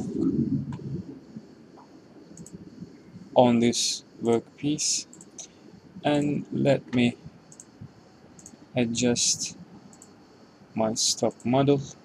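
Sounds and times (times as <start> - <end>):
computer mouse clicks: 1.8 - 2.6, 5.1 - 8.6, 9.9 - 10.2.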